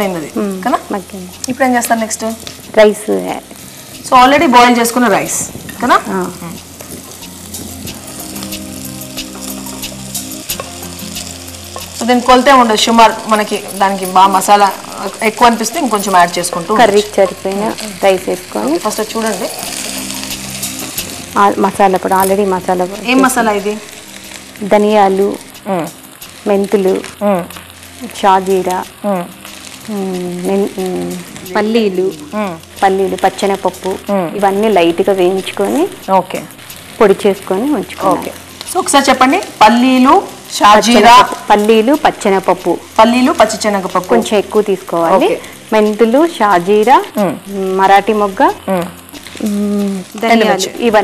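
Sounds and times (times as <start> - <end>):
woman talking: 0.0 - 3.5, 4.1 - 6.6, 12.0 - 19.5, 21.4 - 23.8, 24.6 - 51.0
food frying in a pan: 0.0 - 51.0
vegetables sizzling in a pot: 0.0 - 51.0.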